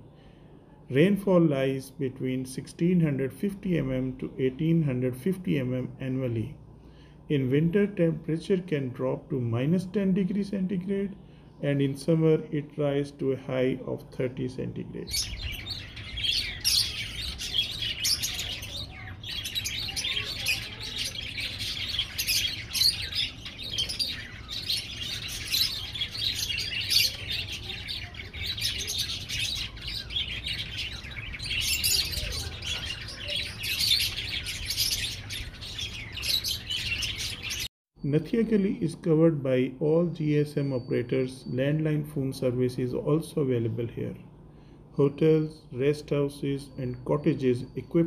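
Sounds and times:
small birds chirping: 0.0s - 39.2s, 39.8s - 48.0s.

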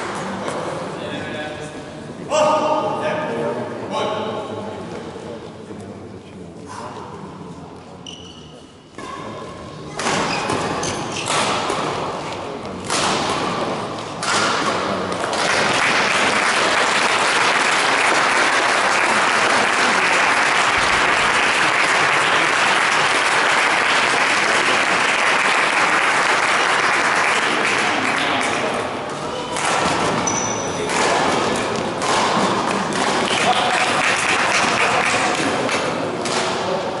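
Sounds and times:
crowd chatter and applause: 0.0s - 1.0s, 11.7s - 37.0s
racket hitting shuttlecock: 9.9s - 12.2s, 12.8s - 15.7s, 29.4s - 34.0s, 34.6s - 36.7s.

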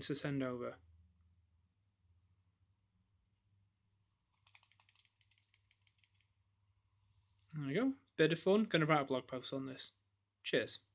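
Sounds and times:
small circuit board rattling: 4.4s - 6.3s.

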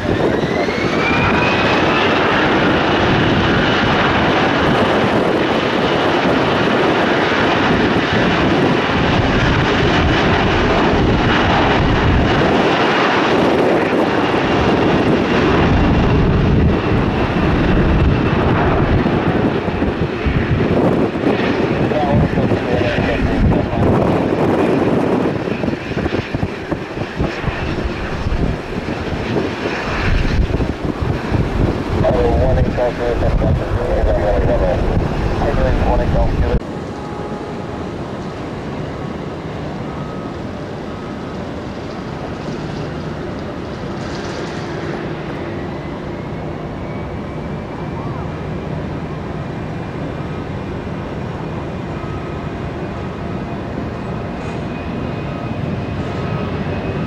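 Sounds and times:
jet engines roaring at takeoff: 0.0s - 57.0s.

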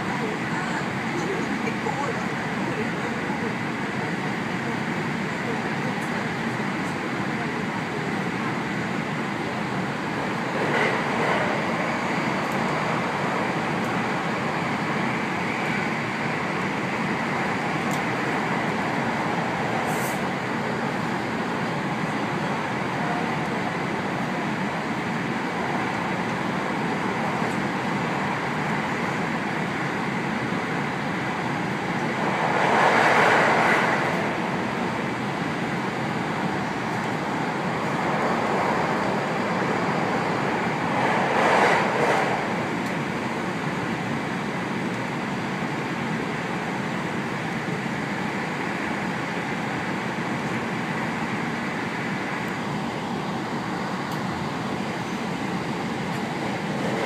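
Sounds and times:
train cabin wheel and air rumble: 0.0s - 57.0s.

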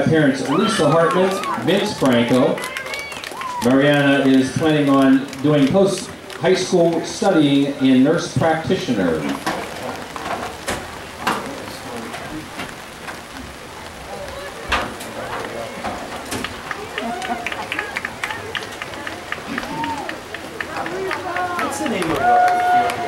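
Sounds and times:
indistinct chatter: 0.0s - 23.0s.

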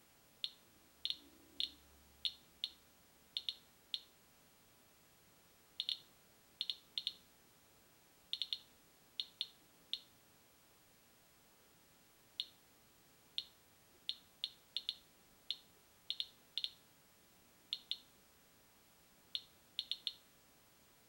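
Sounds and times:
geiger counter chirping: 0.4s - 2.8s, 3.4s - 4.1s, 5.8s - 7.2s, 8.4s - 10.1s, 13.4s - 16.8s, 17.8s - 18.1s, 19.4s - 20.2s.

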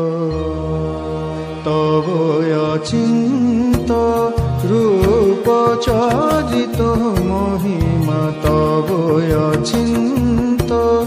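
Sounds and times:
person singing devotional song: 0.0s - 11.0s.

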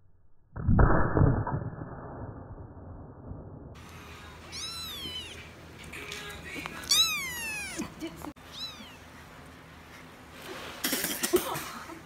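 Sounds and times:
kittens meowing: 4.5s - 5.5s, 6.8s - 9.2s.

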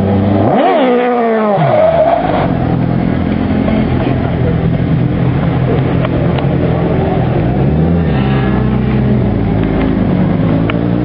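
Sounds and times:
car engine passing by: 6.6s - 11.0s.

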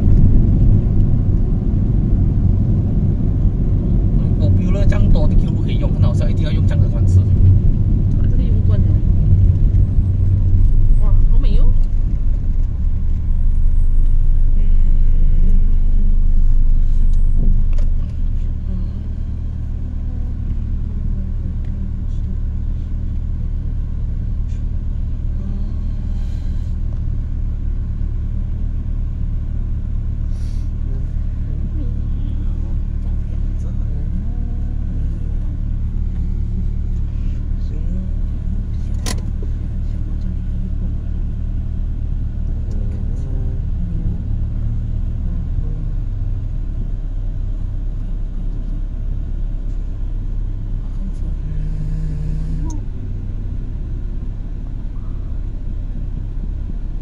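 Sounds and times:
engine and road rumble: 0.0s - 57.0s.

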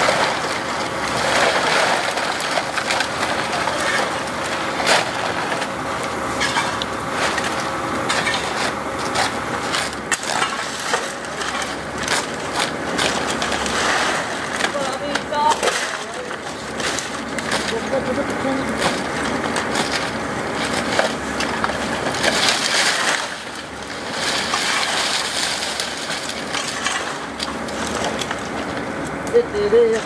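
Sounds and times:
plastic scrap clattering: 6.4s - 28.9s
plastic sack rustling: 8.5s - 29.0s.

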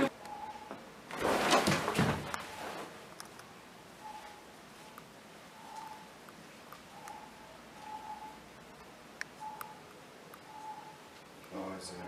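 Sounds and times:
faint electronic beeps: 0.0s - 0.8s, 4.0s - 6.2s, 6.9s - 11.1s.

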